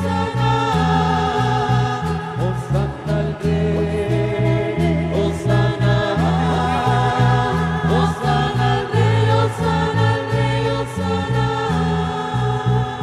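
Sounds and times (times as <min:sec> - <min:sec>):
choir singing a hymn: 0:00.0 - 0:13.0.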